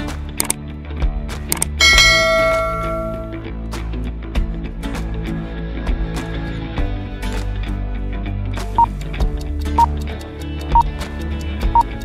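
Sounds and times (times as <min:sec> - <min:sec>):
background music with steady beat: 0:00.0 - 0:12.0
bell-like notification chime: 0:01.8 - 0:03.4.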